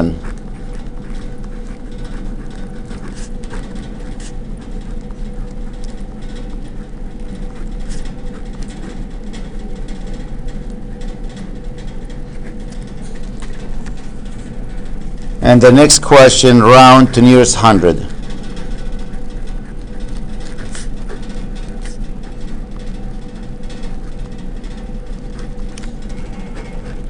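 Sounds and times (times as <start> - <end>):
low background hum: 0.0 - 27.0.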